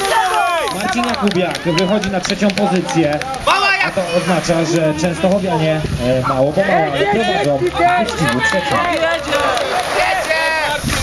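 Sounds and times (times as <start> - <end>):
spectators shouting encouragement: 0.0 - 11.0.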